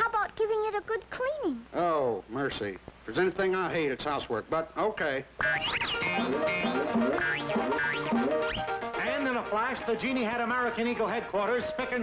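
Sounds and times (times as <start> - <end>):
cartoon music with rising sweeps: 5.4 - 9.1.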